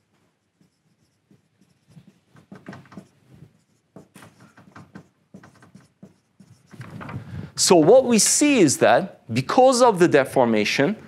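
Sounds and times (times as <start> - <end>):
marker writing on whiteboard: 0.0 - 7.0.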